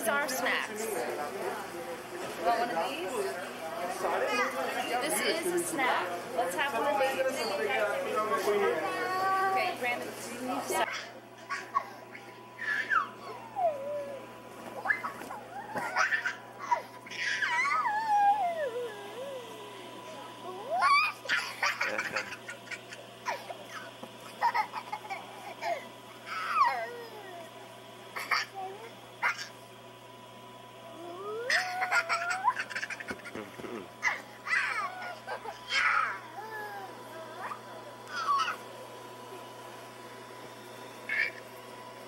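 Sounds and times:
steady low hum: 0:00.0 - 0:42.0
children squealing and laughing: 0:10.8 - 0:27.3, 0:31.0 - 0:33.4, 0:34.0 - 0:38.7, 0:41.1 - 0:41.4.

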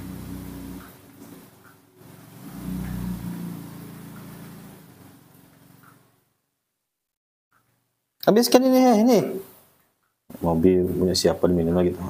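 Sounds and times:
motor engine running: 0:00.0 - 0:06.3.

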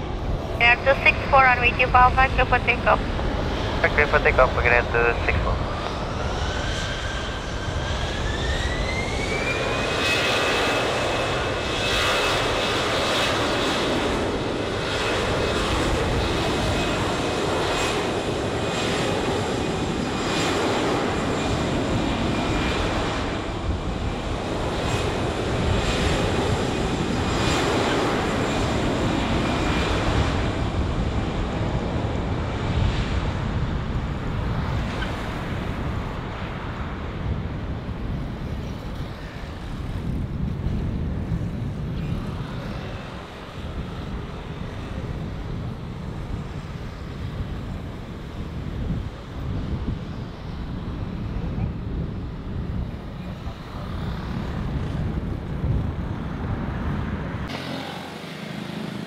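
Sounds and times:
jet engines spooling up: 0:00.0 - 0:30.7.

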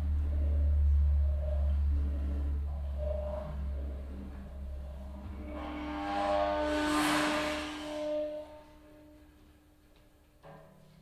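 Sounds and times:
gong feedback ringing tones: 0:00.0 - 0:09.4
deep low drone: 0:00.0 - 0:09.6.

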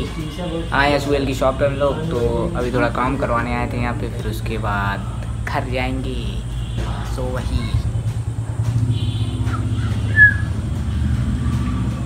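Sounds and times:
motorcycle engine running: 0:05.8 - 0:12.0.

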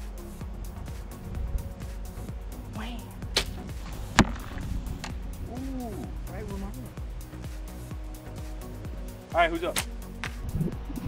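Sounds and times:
background music: 0:00.0 - 0:11.0
bow string snap: 0:03.2 - 0:05.5, 0:09.7 - 0:10.6.

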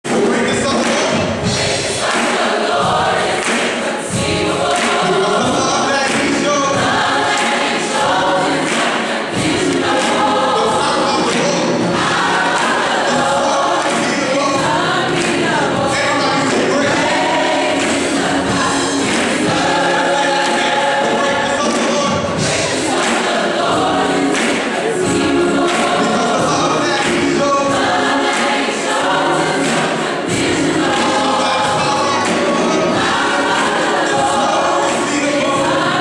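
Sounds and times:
gospel choir singing: 0:00.0 - 0:36.0
live band playing: 0:00.1 - 0:36.0.

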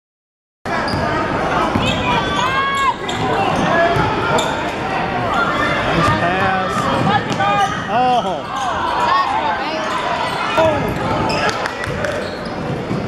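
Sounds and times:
sneaker squeaks: 0:00.8 - 0:04.7, 0:07.0 - 0:13.0.

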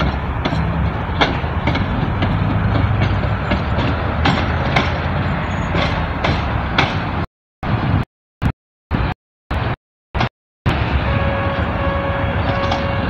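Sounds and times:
wheels clacking over rail joints: 0:00.0 - 0:07.3, 0:09.6 - 0:13.0
tram rumbling: 0:00.0 - 0:08.0, 0:08.9 - 0:13.0.

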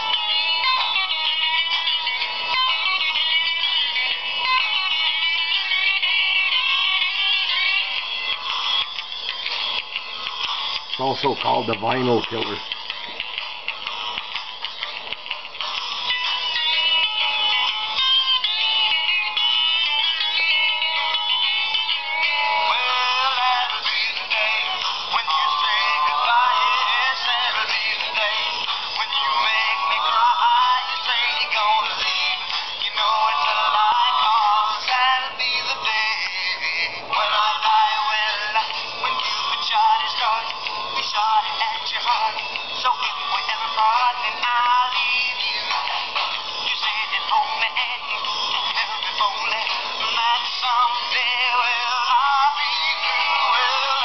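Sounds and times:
song through tinny small speaker: 0:00.0 - 0:54.0.

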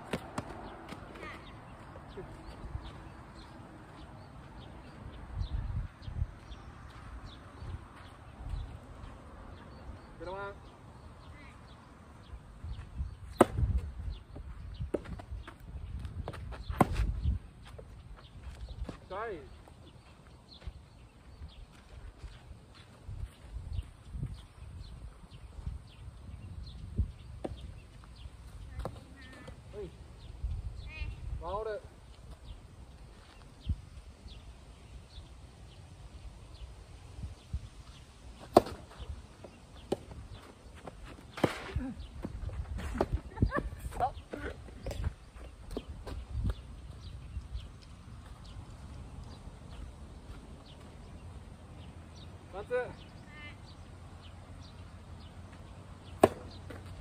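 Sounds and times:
wind rumble on microphone: 0:04.8 - 0:09.0, 0:12.2 - 0:18.9, 0:23.0 - 0:28.8, 0:30.2 - 0:31.6, 0:32.4 - 0:35.2, 0:36.1 - 0:38.3, 0:41.8 - 0:51.4
footsteps scuffing dirt: 0:14.4 - 0:24.6, 0:32.2 - 0:33.6
tennis ball popping off rackets: 0:38.4 - 0:40.2, 0:41.1 - 0:43.2, 0:56.1 - 0:57.0.

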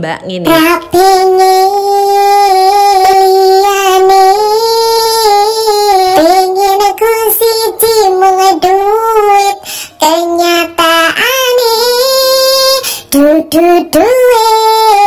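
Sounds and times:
woman singing unaccompanied: 0:00.4 - 0:15.0.

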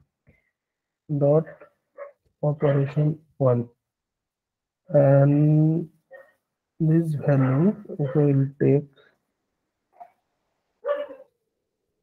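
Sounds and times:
short bark: 0:10.8 - 0:11.3.

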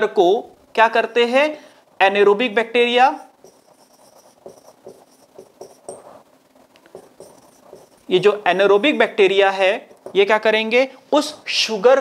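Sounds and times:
marker scratching on whiteboard: 0:03.0 - 0:09.0.

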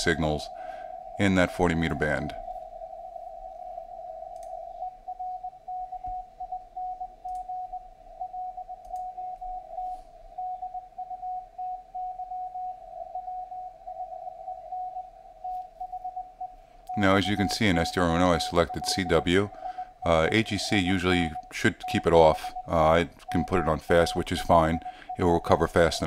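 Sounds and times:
morse code tone: 0:04.7 - 0:26.0.

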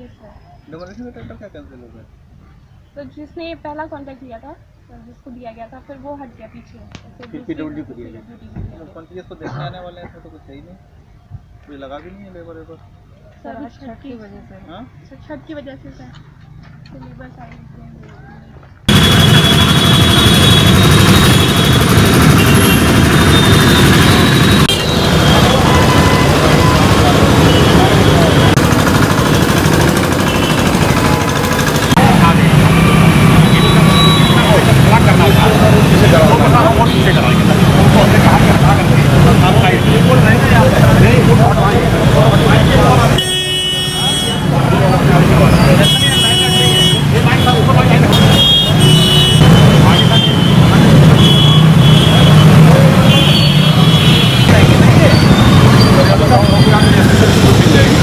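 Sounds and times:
motor traffic: 0:00.0 - 0:58.0
people talking: 0:03.0 - 0:10.7, 0:25.4 - 0:28.6, 0:31.9 - 0:43.2, 0:43.9 - 0:53.5, 0:54.4 - 0:58.0
vehicle horns honking: 0:18.9 - 0:58.0.

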